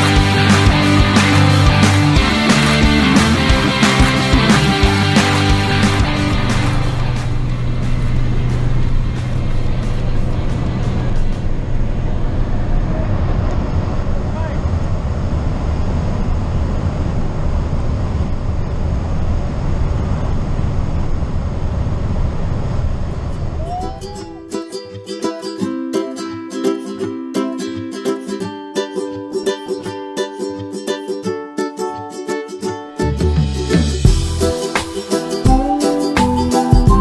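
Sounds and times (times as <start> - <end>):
rock music: 0.0 - 11.8, 33.0 - 37.0
propeller plane engine: 0.0 - 23.6.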